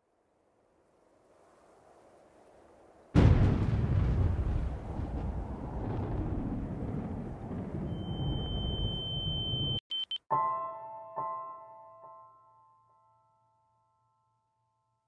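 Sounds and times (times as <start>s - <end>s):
thunderclap with rolling rumble: 3.2s - 9.7s
high steady ringing tone: 7.9s - 10.2s
piano chord: 10.3s - 14.1s.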